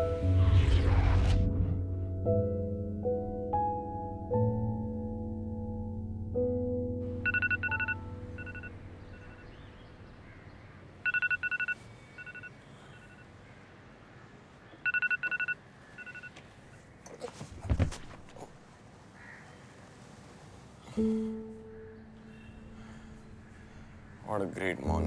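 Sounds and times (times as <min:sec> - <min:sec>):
mobile phone beeping: 0:07.2 - 0:09.4, 0:11.0 - 0:13.3, 0:14.8 - 0:16.4
person falling onto floor: 0:17.3 - 0:18.4.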